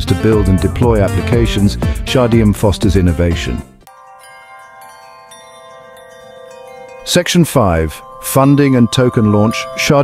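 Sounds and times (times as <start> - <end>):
soft chime-like ringing tones: 3.9 - 10.0.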